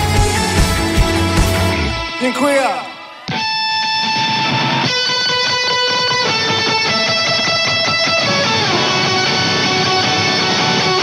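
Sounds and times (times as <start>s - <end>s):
electric guitar chords: 0.0s - 11.0s
live rock band playing: 0.0s - 11.0s.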